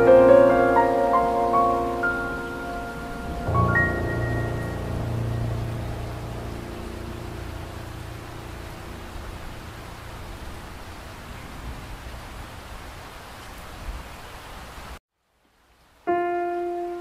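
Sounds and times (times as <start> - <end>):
held music chord: 0.0 - 10.6.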